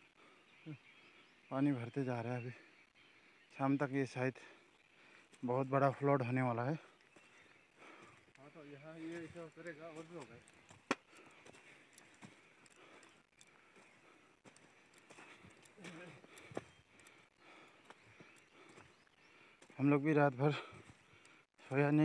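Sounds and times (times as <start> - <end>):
footsteps on loose rock and mud: 6.8 - 22.0.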